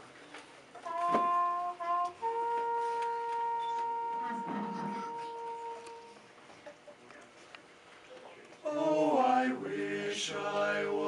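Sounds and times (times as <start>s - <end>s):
muted trumpet solo: 0.8s - 6.2s.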